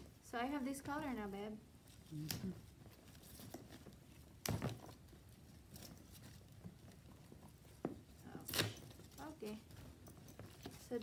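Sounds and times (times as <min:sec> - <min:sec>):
faint rustling: 0:00.0 - 0:11.0.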